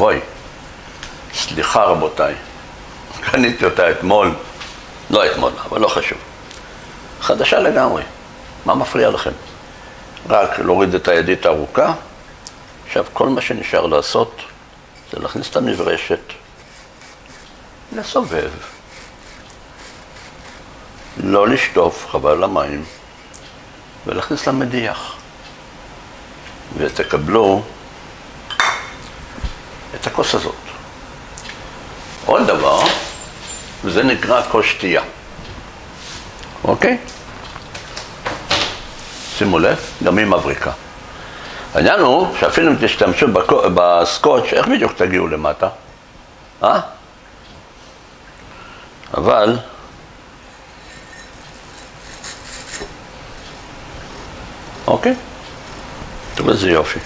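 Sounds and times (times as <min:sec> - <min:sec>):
scrubber scraping inside glass: 0:16.6 - 0:17.6, 0:18.6 - 0:21.2, 0:22.4 - 0:23.4, 0:50.4 - 0:53.5
glass mug clinking and ringing: 0:28.5 - 0:29.0, 0:50.5 - 0:52.9.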